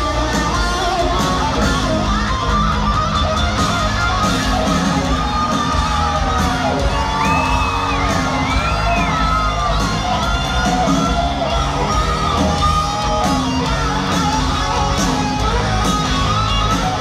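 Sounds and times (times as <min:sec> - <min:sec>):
crowd cheering and whooping: 0:00.0 - 0:17.0
electric guitar: 0:00.0 - 0:17.0
live rock band: 0:00.0 - 0:17.0.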